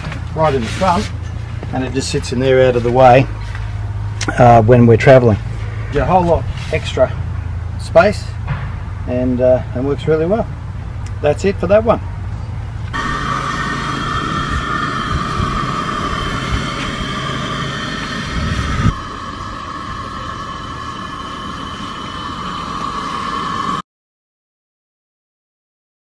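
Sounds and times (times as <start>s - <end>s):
high-pitched drone: 13.0s - 23.8s.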